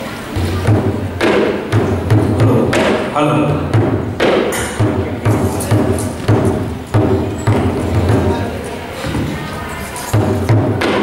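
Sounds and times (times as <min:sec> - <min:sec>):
barrel drums playing: 0:00.2 - 0:09.5, 0:10.1 - 0:11.0
sharp drum stick strikes: 0:03.7 - 0:08.3.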